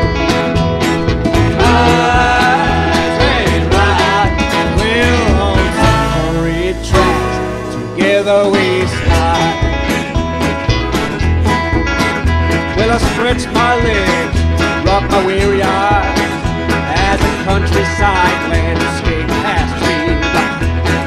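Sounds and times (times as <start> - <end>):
acoustic guitar: 0.0 - 21.0
drums and double bass beat: 0.0 - 21.0
live blues band playing: 0.0 - 21.0
resonator guitar: 0.0 - 21.0.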